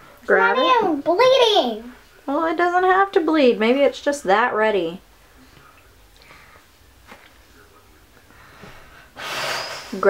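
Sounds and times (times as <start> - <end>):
person exhaling sharply: 9.2 - 10.0.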